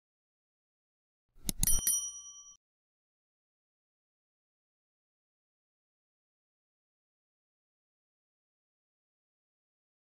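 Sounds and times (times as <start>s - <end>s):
notification bell ding: 1.5s - 2.6s.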